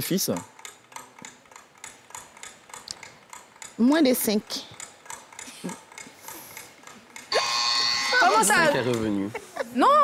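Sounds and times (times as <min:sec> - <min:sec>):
countdown timer ticking: 0:00.0 - 0:09.0.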